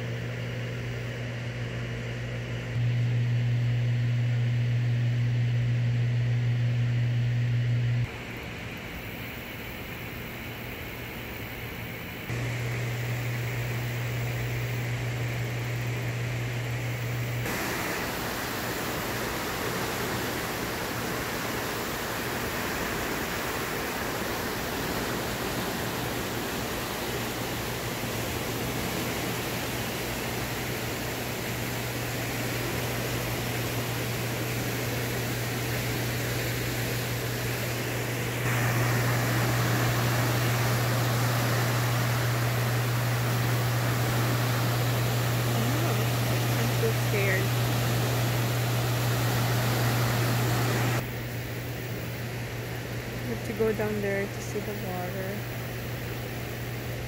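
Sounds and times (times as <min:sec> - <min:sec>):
steady low hum: 0:00.0 - 0:57.0
turbulent water rushing: 0:17.4 - 0:35.8, 0:36.7 - 0:51.0.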